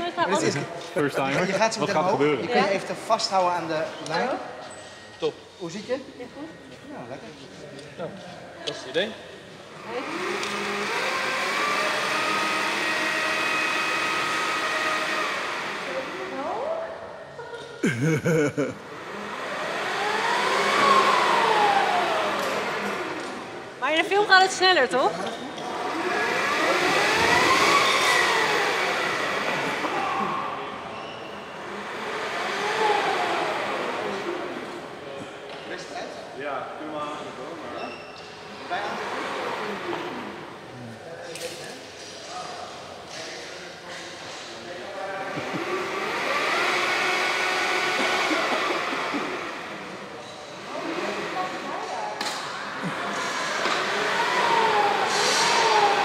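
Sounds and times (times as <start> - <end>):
electric winch whining: 9.7 - 16.9, 18.9 - 23.6, 25.6 - 35.0, 45.2 - 56.0.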